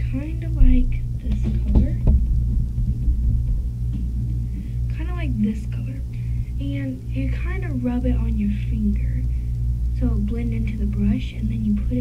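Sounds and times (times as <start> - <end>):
irregular low rumbling: 0.0 - 12.0
low steady hum: 0.0 - 12.0.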